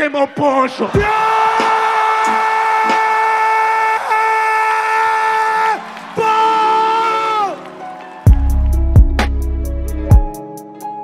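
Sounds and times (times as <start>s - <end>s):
crowd noise: 0.0s - 8.3s.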